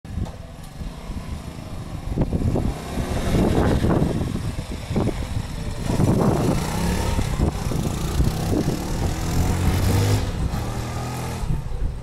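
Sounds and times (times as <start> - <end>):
motorcycle engine rumbling: 0.1 - 12.0.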